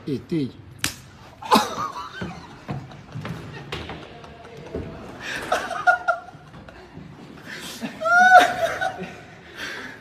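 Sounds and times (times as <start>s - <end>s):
person laughing squealing: 7.8s - 9.0s.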